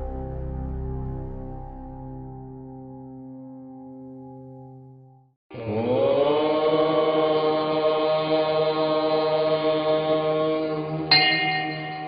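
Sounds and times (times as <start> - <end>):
voice chanting a held note: 5.5 - 12.0.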